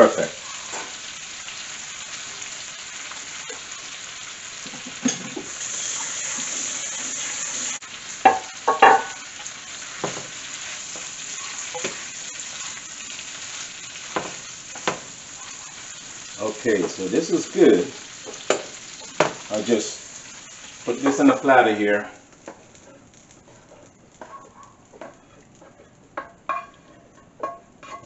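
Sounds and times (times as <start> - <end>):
chickpeas sizzling in a skillet: 0.0 - 28.0
spatula knocking and scraping pan: 8.2 - 12.1, 14.0 - 15.1, 23.6 - 28.0.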